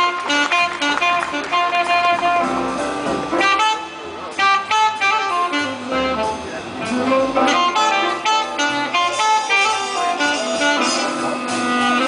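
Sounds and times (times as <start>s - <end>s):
jazz ensemble horn bursts: 0.0s - 12.0s.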